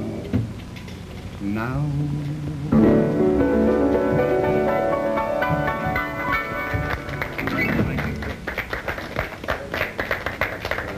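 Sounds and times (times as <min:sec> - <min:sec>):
audience applauding: 0:06.7 - 0:10.9.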